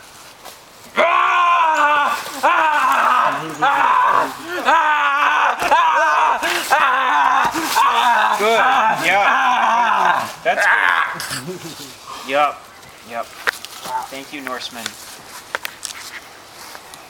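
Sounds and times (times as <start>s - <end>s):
boy screaming: 1.0s - 11.3s.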